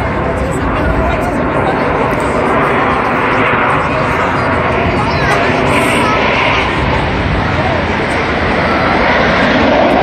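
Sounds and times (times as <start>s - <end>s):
jet roar overhead: 0.0s - 10.0s
voices of onlookers: 0.0s - 10.0s.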